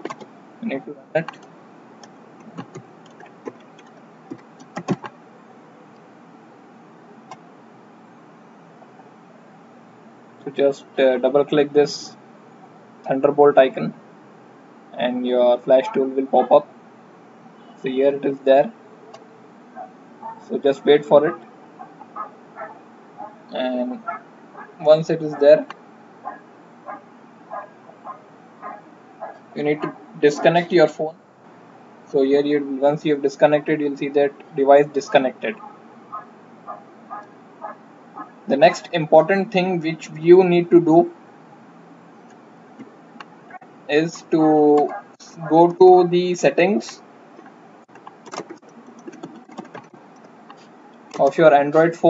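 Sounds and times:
keyboard typing: 0.0s - 0.3s, 1.2s - 5.2s, 47.9s - 51.3s.

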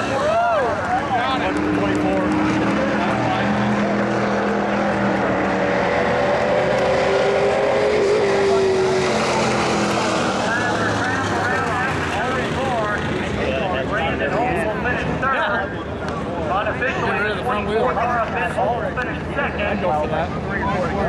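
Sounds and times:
race car engines at speed: 0.0s - 21.0s.

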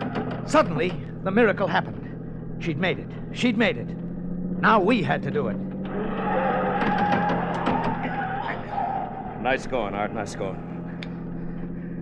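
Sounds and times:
car tyres squealing: 0.0s - 12.0s
engine drone: 0.0s - 12.0s.

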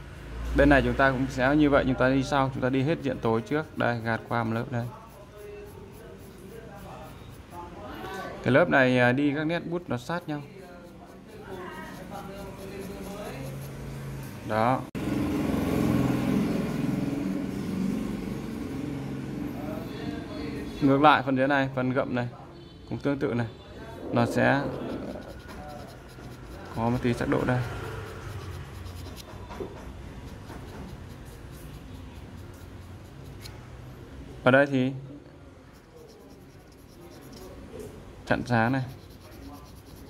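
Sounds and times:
pencil scratching on paper: 2.4s - 8.4s, 9.6s - 14.8s, 24.0s - 34.0s, 35.7s - 40.0s.

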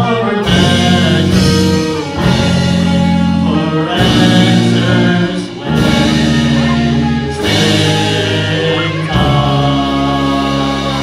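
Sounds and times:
live rock band playing: 0.0s - 11.0s
several voices singing: 0.0s - 11.0s.

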